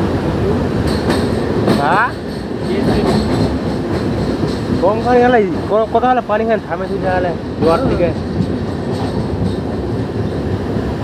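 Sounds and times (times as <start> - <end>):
train rumbling over bridge: 0.0 - 11.0.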